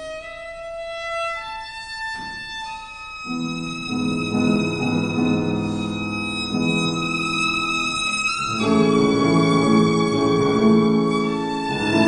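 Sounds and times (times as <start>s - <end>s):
violin playing long notes: 0.0s - 12.0s
grand piano playing chords: 3.2s - 12.0s.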